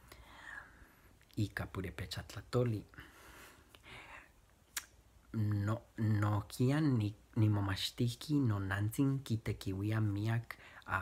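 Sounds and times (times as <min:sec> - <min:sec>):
man speaking: 0:01.3 - 0:03.0, 0:05.3 - 0:11.0.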